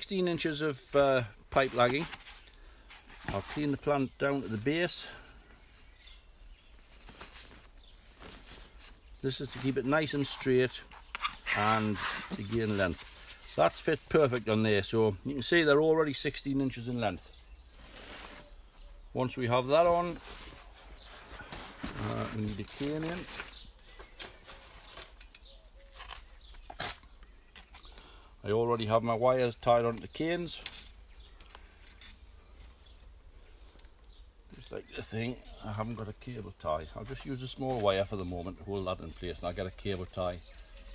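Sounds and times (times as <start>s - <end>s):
faint rustling of leaves: 0.0s - 40.9s
cane rustling: 6.7s - 14.6s, 19.5s - 27.0s, 36.9s - 40.9s
faint bird calls: 17.3s - 19.2s, 22.9s - 28.3s.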